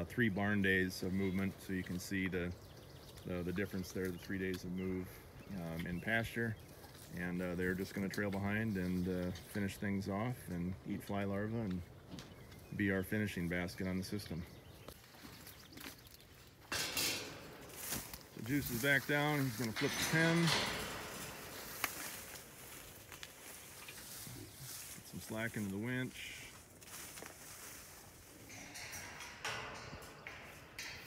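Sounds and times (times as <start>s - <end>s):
faint outdoor background: 0.0s - 31.0s
steel pipe frame rattling: 16.2s - 31.0s
rustling through tall oats: 17.7s - 28.4s.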